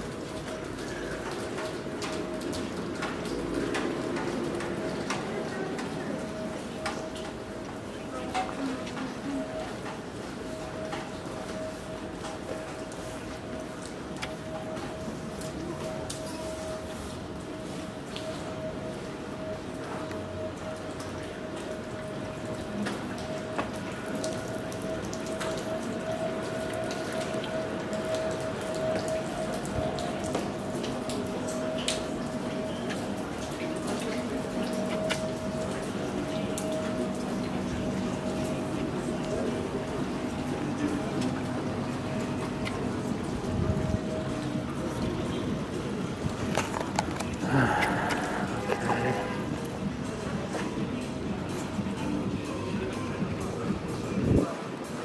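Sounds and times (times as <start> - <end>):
rain pattering on stone paving: 0.0 - 55.0
sharp water drips: 0.0 - 55.0
footsteps on wet stone: 31.9 - 43.4, 44.0 - 51.8.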